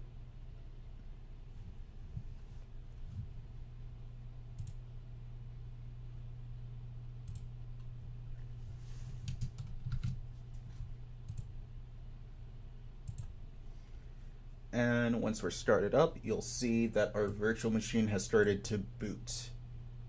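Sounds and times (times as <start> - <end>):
steady low hum: 0.0 - 20.0
keyboard and mouse clicks: 4.6 - 4.8, 9.2 - 10.2, 11.3 - 11.5, 13.0 - 13.4.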